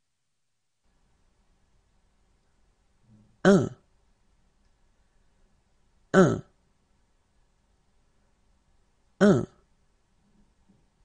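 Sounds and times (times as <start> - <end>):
person saying a word: 6.2 - 6.5, 9.2 - 9.6.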